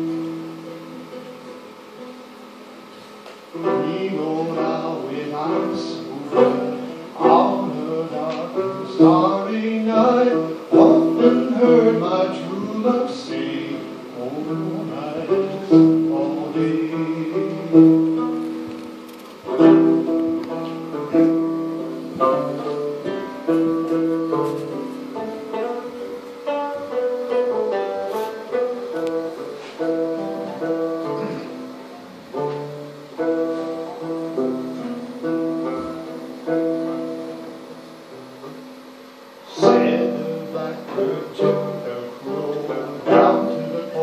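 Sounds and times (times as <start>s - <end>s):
plucked banjo melody: 0.0s - 44.0s.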